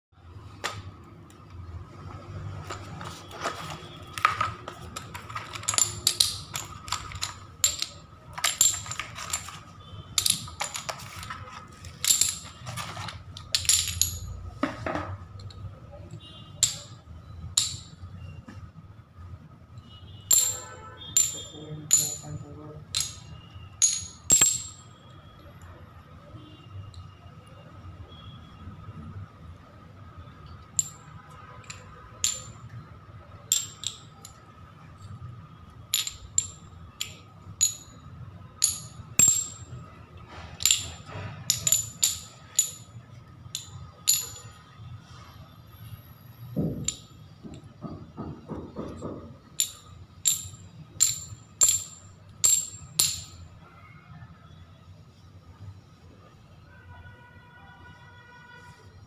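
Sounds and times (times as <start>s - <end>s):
ceramic tiles clinking: 2.5s - 14.5s, 15.3s - 18.1s, 20.3s - 25.4s, 30.4s - 44.9s, 46.6s - 53.5s.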